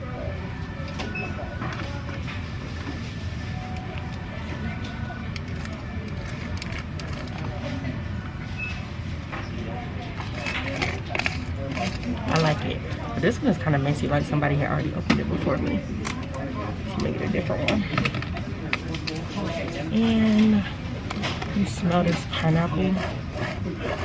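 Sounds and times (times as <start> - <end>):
clicks and rustles of handling: 5.3 - 7.8.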